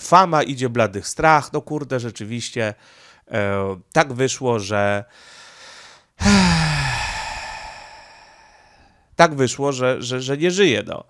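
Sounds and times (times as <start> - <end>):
man sighing: 6.2 - 9.0.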